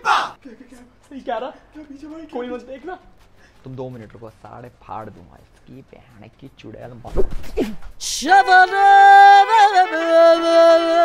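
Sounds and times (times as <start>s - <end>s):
high sung voice: 8.0s - 11.0s.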